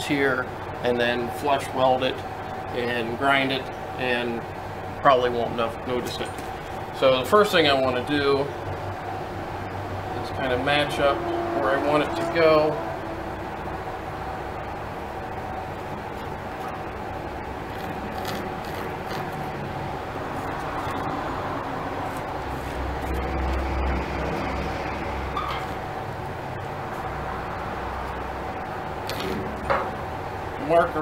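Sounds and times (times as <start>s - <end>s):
mechanical hum with held tones: 0.0s - 31.0s
low rumble: 9.0s - 18.2s.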